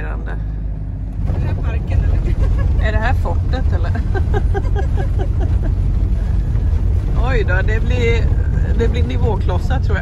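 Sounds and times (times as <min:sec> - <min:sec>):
motorhome engine rumble: 0:00.0 - 0:10.0.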